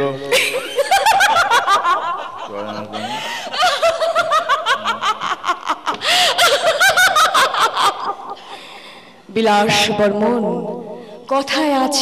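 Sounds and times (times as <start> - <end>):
person laughing loudly: 0.4 - 8.8.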